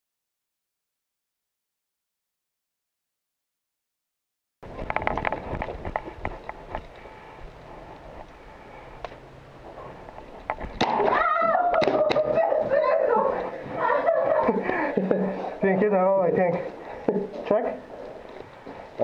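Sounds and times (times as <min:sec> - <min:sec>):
high-pitched voice crying out: 0:11.0 - 0:13.4.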